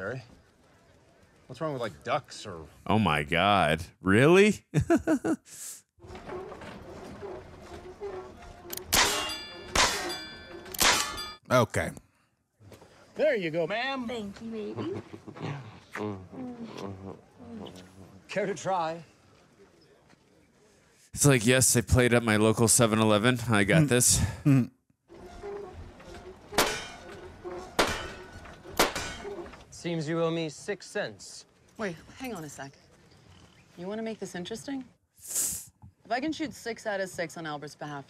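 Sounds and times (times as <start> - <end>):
sharp metallic clangs ringing: 8.7 - 11.5, 26.6 - 27.2, 27.8 - 29.4.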